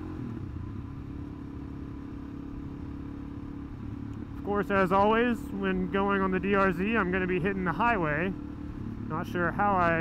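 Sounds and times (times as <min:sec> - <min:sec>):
motorcycle engine droning: 0:00.0 - 0:10.0.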